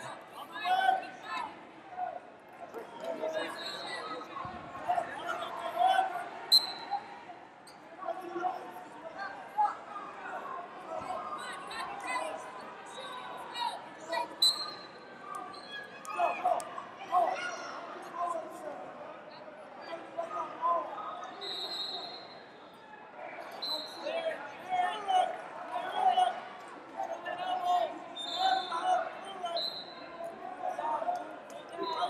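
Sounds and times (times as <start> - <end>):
people calling out and talking: 0.0 - 32.0.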